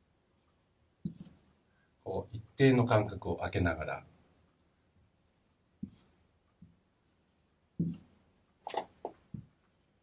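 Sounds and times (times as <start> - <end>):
marker tapping on whiteboard: 1.0 - 1.4, 5.8 - 6.8, 7.8 - 8.1.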